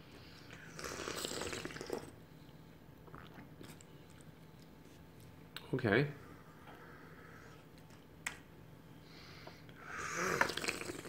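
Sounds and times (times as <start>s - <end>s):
person slurping tea: 0.6s - 2.1s, 9.9s - 11.0s.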